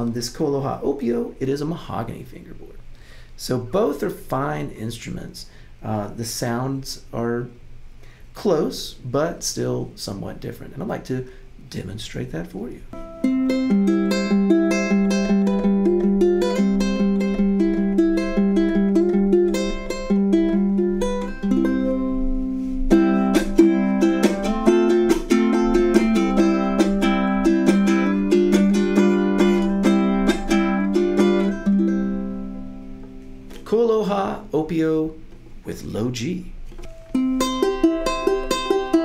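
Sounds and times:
man's voice: 0.0 - 2.7, 3.4 - 7.5, 8.4 - 12.8, 33.6 - 36.5
ukulele plucked and strummed: 13.0 - 35.4, 36.7 - 39.0.

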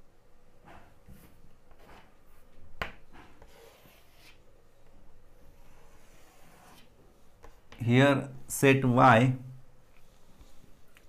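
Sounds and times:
chalk scraping on blackboard: 3.4 - 4.4, 5.5 - 7.8.

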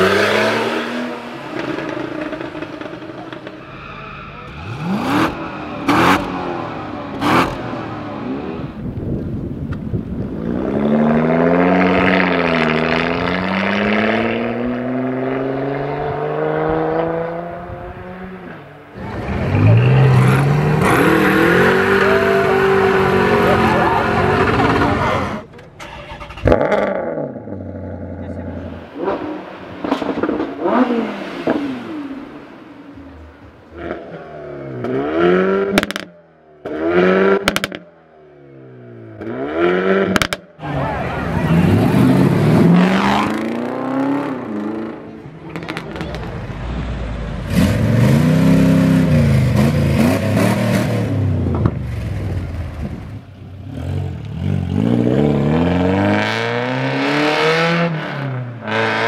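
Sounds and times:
car engines revving hard: 0.0 - 8.9, 10.0 - 37.9, 38.5 - 59.0.

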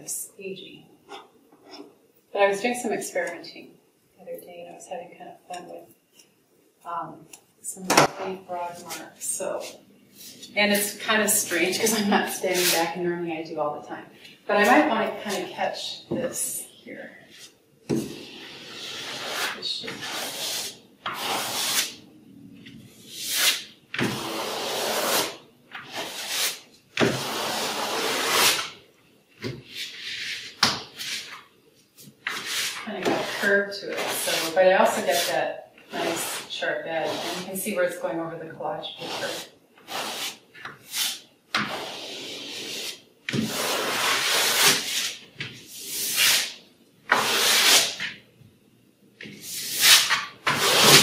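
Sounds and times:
painting tool scraping paper: 8.8 - 13.0, 18.1 - 22.0, 23.0 - 28.7, 29.7 - 31.5, 32.2 - 37.6, 38.9 - 45.2, 45.8 - 48.2, 49.4 - 51.0.

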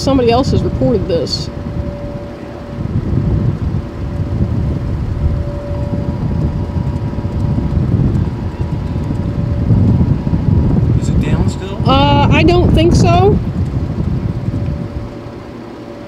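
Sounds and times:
distant warning siren: 0.0 - 16.0
higher siren tone: 0.0 - 16.0
wind rumbling on microphone: 0.0 - 16.0.

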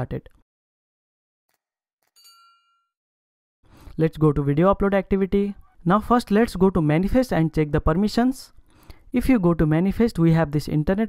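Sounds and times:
notification ding: 2.2 - 2.9.

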